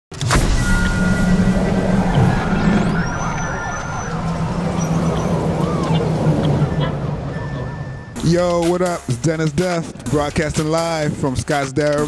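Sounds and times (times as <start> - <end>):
sudden musical hit: 0.1 - 8.3
thin rising whistle: 0.5 - 8.2
low rumble with held tones: 0.7 - 8.2.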